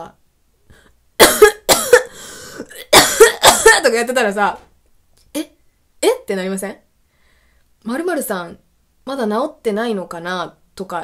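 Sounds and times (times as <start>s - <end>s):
woman coughing: 1.2s - 4.0s.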